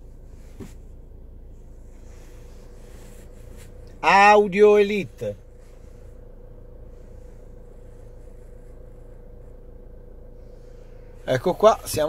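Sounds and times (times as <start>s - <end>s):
car cabin rumble and hum: 0.0s - 12.0s
faint steady tone: 0.0s - 12.0s.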